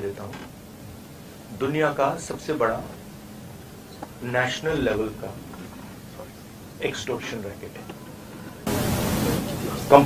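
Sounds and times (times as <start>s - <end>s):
speech: 0.0s - 0.5s, 1.5s - 3.0s, 4.2s - 8.0s, 9.1s - 10.0s
microphone hiss: 0.0s - 10.0s.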